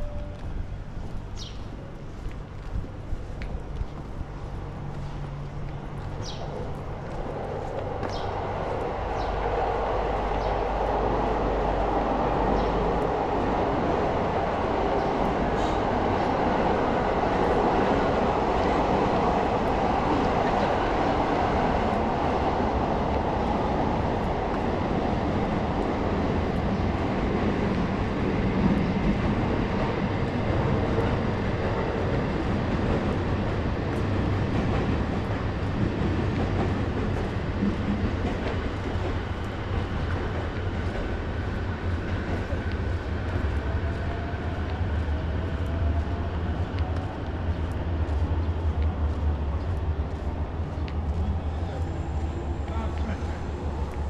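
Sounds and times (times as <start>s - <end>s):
train wheels rumbling on rail: 0.0s - 54.0s.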